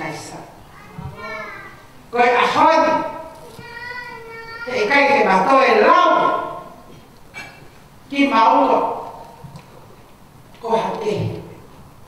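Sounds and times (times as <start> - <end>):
high-pitched voices talking: 3.4 - 4.8.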